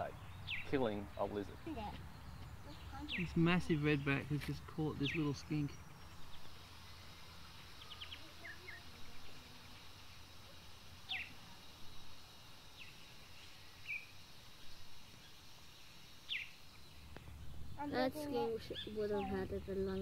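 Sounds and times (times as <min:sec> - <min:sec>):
high bird chirps: 0:00.0 - 0:04.2, 0:11.1 - 0:11.4.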